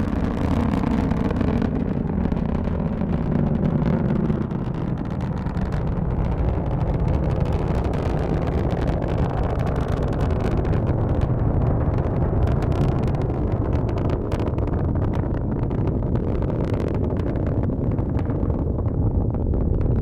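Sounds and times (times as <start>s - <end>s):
rocket engines rumbling and crackling: 0.0s - 20.0s.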